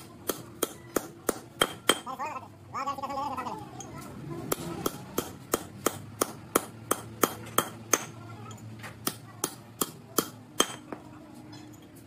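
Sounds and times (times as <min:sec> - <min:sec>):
hammer striking metal tool: 0:00.0 - 0:02.1, 0:04.5 - 0:08.2, 0:09.0 - 0:11.0.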